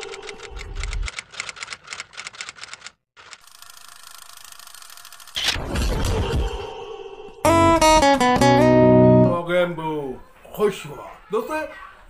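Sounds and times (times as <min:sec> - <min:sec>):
fast mechanical rattle: 0:00.4 - 0:05.5.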